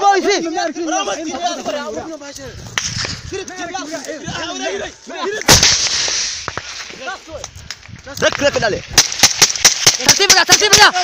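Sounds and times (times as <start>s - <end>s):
rocket launcher blast echo: 5.5s - 6.8s
sharp gunshots: 5.5s - 7.1s, 8.9s - 11.0s.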